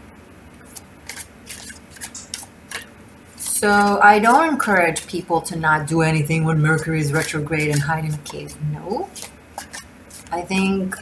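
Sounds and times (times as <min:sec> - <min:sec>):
cards shuffled by hand: 0:00.6 - 0:04.4, 0:06.9 - 0:10.4.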